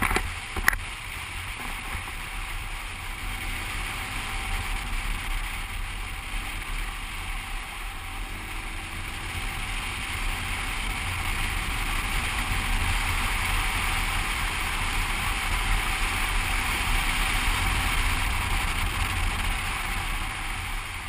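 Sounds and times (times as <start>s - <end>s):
motorcycle engine rumble: 0.0s - 21.0s.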